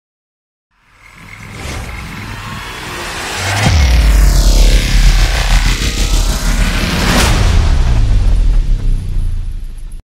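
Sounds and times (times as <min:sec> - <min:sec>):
electronic music with heavy bass: 0:00.8 - 0:10.0
noisy riser: 0:00.8 - 0:10.0
sharp low hit: 0:00.9 - 0:10.0.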